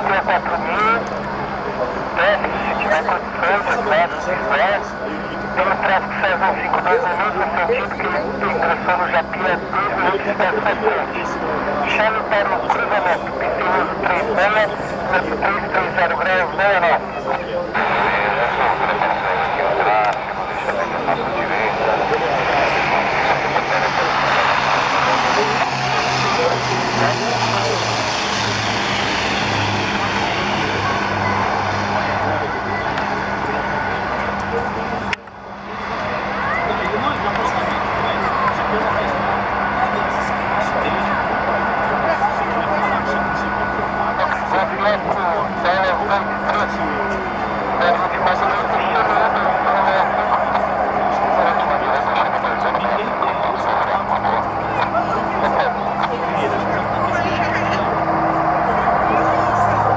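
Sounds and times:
turboprop engines droning: 0.0s - 59.9s
voices: 0.0s - 59.9s.

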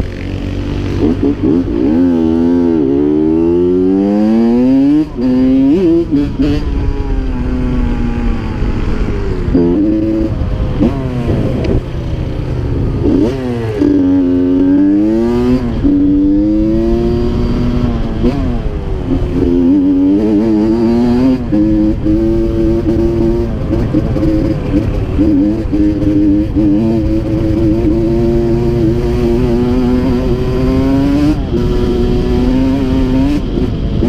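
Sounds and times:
dirt bike engine revving: 0.0s - 34.0s
low wind rumble: 0.0s - 34.0s.

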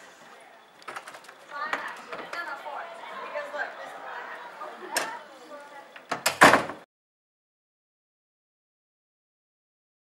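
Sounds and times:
door banging shut: 6.0s - 6.8s.

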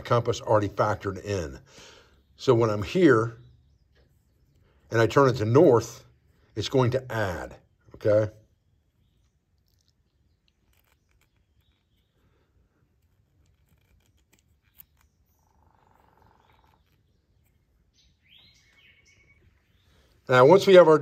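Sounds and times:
faint bird chirps: 1.3s - 6.6s, 7.3s - 21.0s.

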